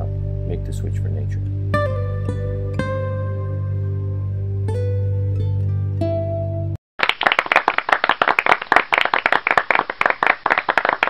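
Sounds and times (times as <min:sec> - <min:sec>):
small group applauding: 0:07.0 - 0:11.0.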